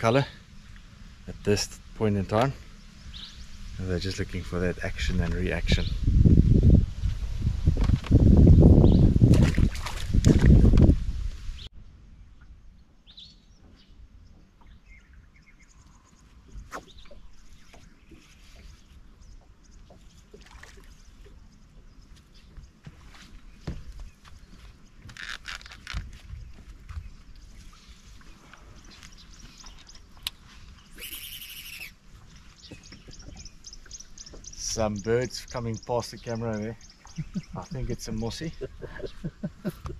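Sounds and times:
open-water ambience: 0.0 - 6.2, 6.8 - 39.9
short bird calls: 28.9 - 34.7.

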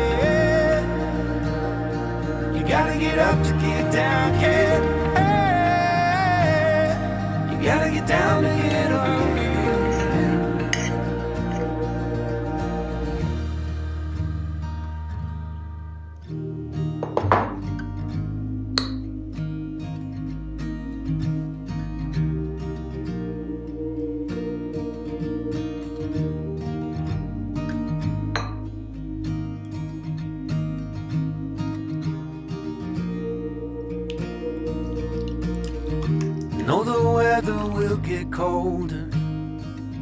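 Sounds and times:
acoustic guitar background music: 0.0 - 40.0.

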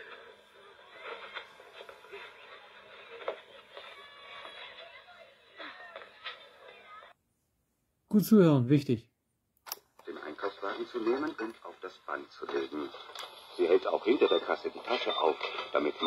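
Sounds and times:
faint thin voices from cassette: 0.0 - 7.2, 10.0 - 16.0.

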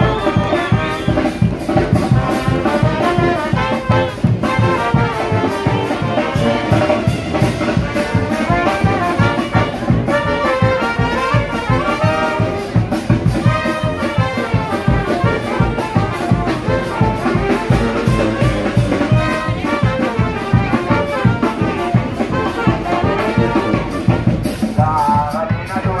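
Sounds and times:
brass horns playing melody: 0.0 - 26.0
steady drum beat: 0.0 - 26.0.

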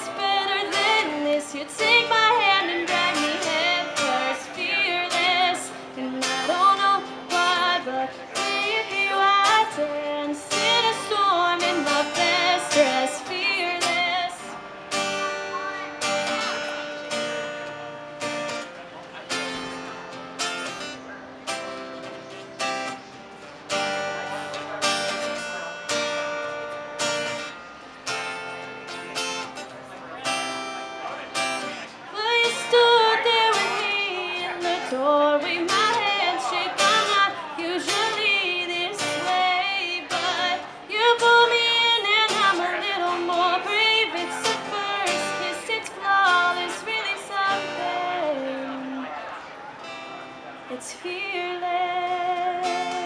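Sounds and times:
woman singing: 0.0 - 14.6, 32.1 - 49.1, 50.7 - 53.0
acoustic guitar strummed: 0.0 - 53.0.

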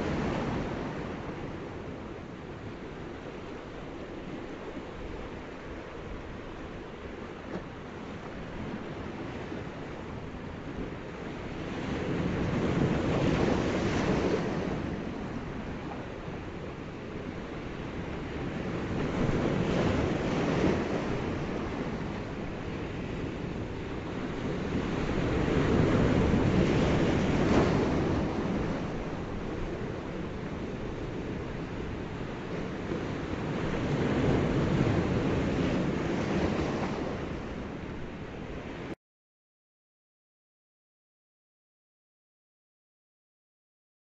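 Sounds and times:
ocean surf rushing: 18.5 - 39.0.

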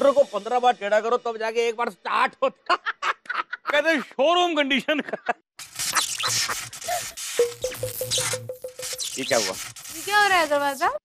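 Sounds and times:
rapid buzzy beeps: 5.7 - 11.0.

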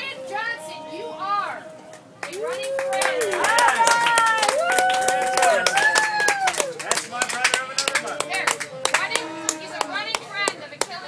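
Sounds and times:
voices talking: 0.0 - 5.7, 6.8 - 11.0
audience clapping: 1.9 - 11.0.

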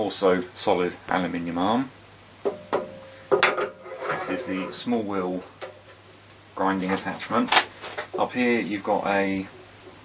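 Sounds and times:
metallic knocks: 2.5 - 4.7
metal ringing tone: 2.5 - 5.0.

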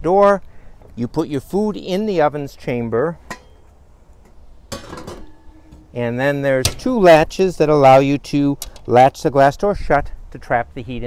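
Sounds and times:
faint metallic ringing: 3.2 - 7.1
cooking pot clink: 3.3 - 3.6.

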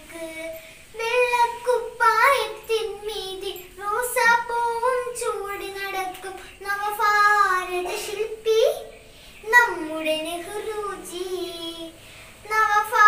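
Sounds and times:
girl singing: 0.0 - 13.0.

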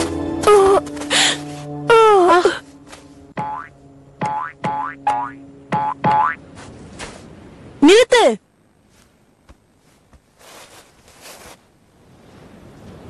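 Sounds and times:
boing-like chirps: 3.4 - 6.4.

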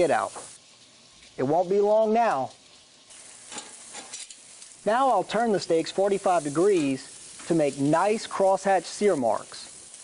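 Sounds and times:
meat sizzling on grill: 0.0 - 10.0.

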